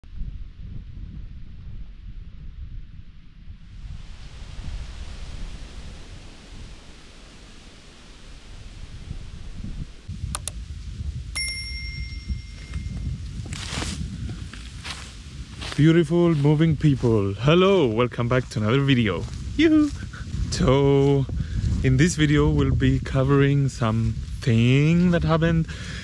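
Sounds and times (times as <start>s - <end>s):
wind noise on microphone: 0.0s - 26.0s
rustle: 3.6s - 26.0s
clicks: 10.3s - 10.6s
bell ding: 11.4s - 13.3s.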